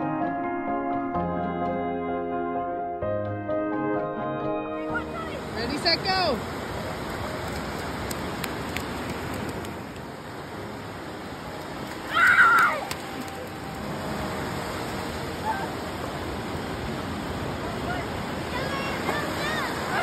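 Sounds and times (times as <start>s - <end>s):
ocean surf washing in: 4.6s - 20.0s
child squealing: 12.1s - 12.9s.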